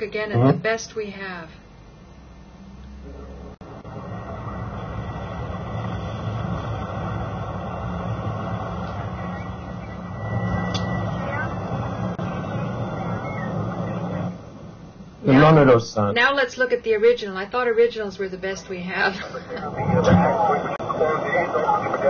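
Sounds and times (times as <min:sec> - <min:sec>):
rumble of street noise: 0:02.2 - 0:15.2, 0:19.5 - 0:22.0
faint wailing sirens: 0:03.0 - 0:15.2, 0:19.3 - 0:22.0
voices: 0:07.5 - 0:14.6, 0:15.2 - 0:22.0.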